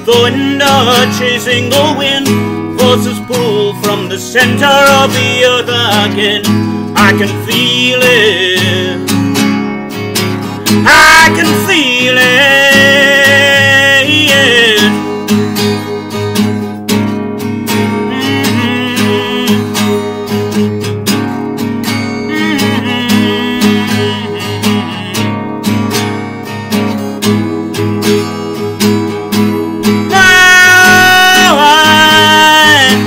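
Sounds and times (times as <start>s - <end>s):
man singing: 0.0s - 9.4s, 10.6s - 15.2s, 17.9s - 20.6s, 22.0s - 25.5s, 29.8s - 33.0s
acoustic guitar strumming: 0.0s - 33.0s.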